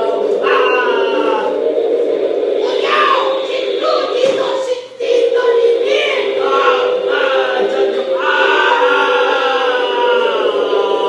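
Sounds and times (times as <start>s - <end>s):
choir-like singing: 0.0s - 11.0s.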